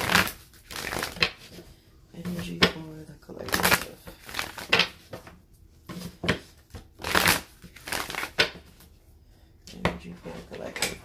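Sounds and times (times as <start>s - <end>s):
cards being shuffled: 0.0s - 1.6s, 3.4s - 5.3s, 5.9s - 8.9s.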